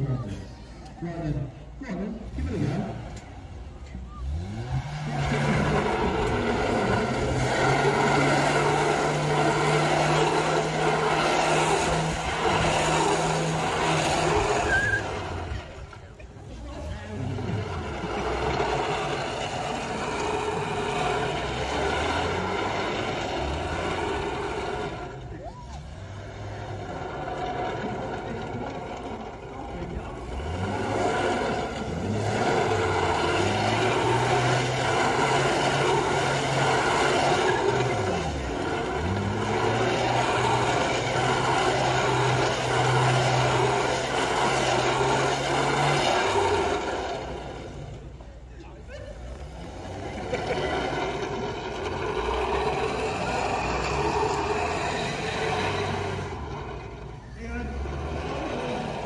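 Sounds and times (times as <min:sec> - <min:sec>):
car engine revving hard: 0:00.0 - 0:59.0.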